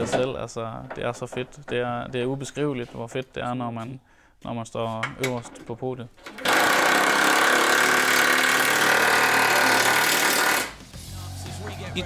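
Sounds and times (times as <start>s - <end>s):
power tool running: 6.4s - 10.8s.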